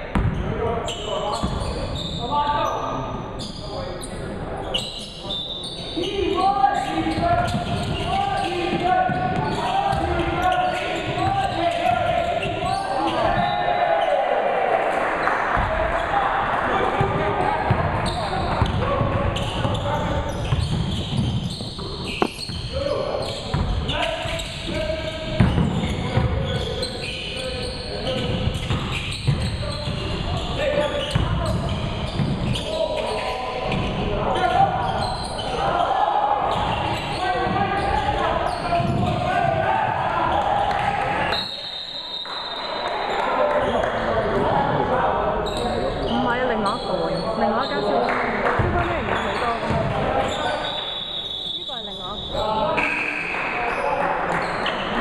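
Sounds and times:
voices and shouts echoing: 0:00.0 - 0:55.0.

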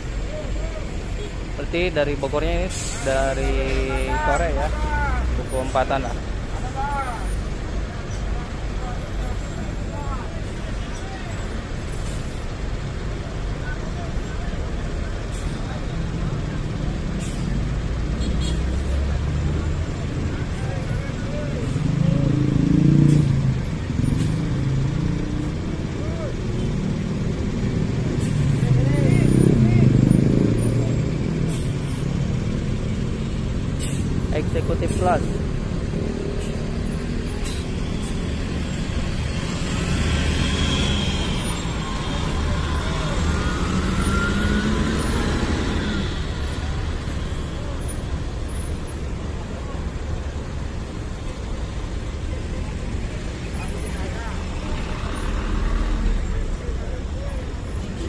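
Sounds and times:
road traffic: 0:00.0 - 0:58.0
coaches passing by: 0:23.5 - 0:58.0.

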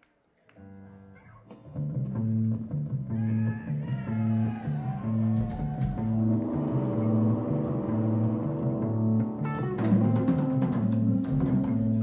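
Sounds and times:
rock band playing droning riff: 0:04.3 - 0:12.0.

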